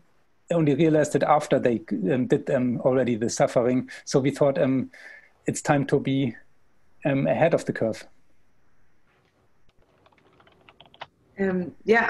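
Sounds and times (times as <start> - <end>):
faint keyboard typing: 9.0 - 11.4.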